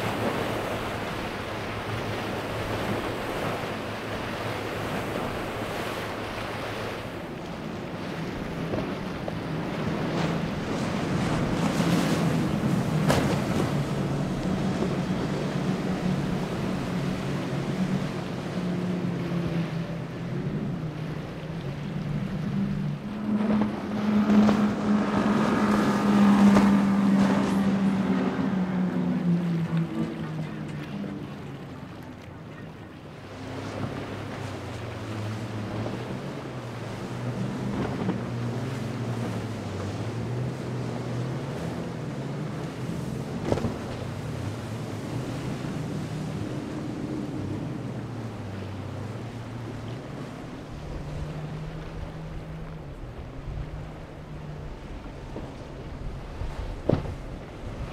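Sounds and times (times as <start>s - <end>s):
boat engines droning: 0.0s - 57.9s
lower-pitched engine drone: 0.0s - 57.9s
wind: 0.0s - 57.9s.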